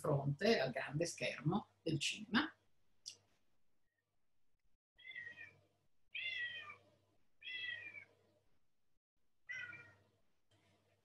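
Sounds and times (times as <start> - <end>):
cats meowing: 5.0 - 8.1, 9.5 - 10.0.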